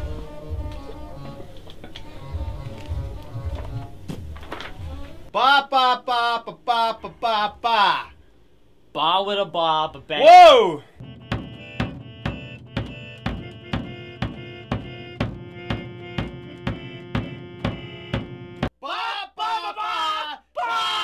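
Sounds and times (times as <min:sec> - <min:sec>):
men yelling: 0:05.3 - 0:08.2, 0:10.0 - 0:10.9, 0:18.8 - 0:21.0
drum struck with a stick: 0:11.0 - 0:18.4
keyboard sustained chord: 0:11.0 - 0:18.7.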